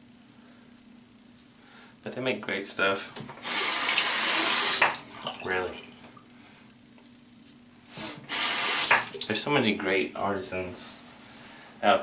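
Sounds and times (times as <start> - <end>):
tap water running into sink: 3.2 - 6.1, 8.3 - 9.3.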